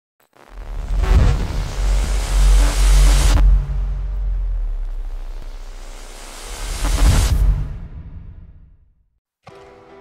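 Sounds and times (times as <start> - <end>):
noisy whoosh: 0.5 - 8.8
deep bass: 0.6 - 9.0.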